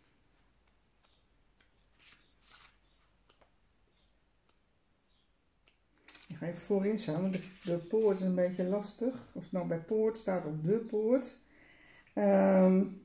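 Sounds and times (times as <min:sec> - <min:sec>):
paper pages rustling: 0:01.0 - 0:03.6, 0:06.0 - 0:09.0.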